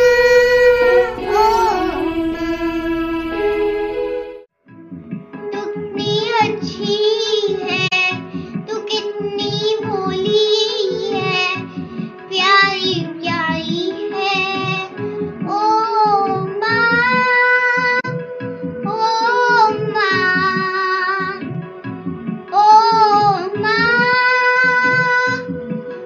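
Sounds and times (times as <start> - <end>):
child singing: 0.0 - 3.8, 5.5 - 11.7, 12.3 - 18.2, 18.8 - 21.5, 22.5 - 25.6
instrumental backing music: 0.0 - 26.0.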